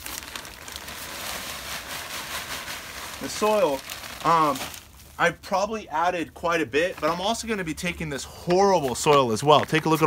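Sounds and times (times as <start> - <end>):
plastic bag rustling: 0.0 - 5.6, 6.8 - 7.4.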